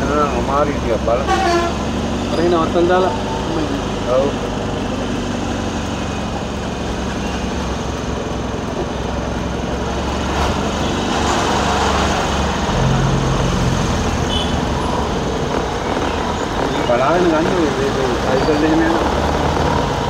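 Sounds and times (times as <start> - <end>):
vehicle engine hum and road noise: 0.0 - 20.0.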